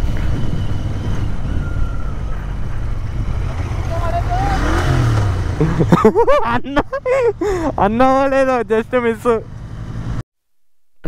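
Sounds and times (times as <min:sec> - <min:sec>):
motorcycle engine idling: 0:00.0 - 0:05.7
man exclaiming and laughing: 0:05.6 - 0:08.6.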